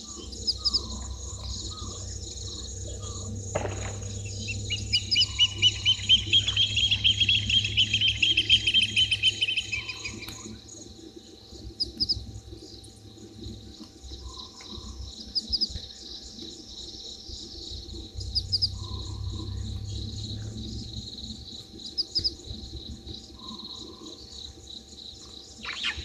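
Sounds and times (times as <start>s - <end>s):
bird piping notes: 0.0s - 10.6s, 17.2s - 22.6s, 25.6s - 26.0s
crickets trilling: 0.0s - 26.0s.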